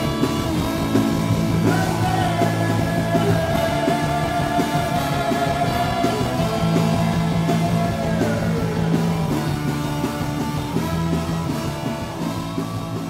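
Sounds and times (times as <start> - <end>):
ska band playing: 0.0 - 13.0.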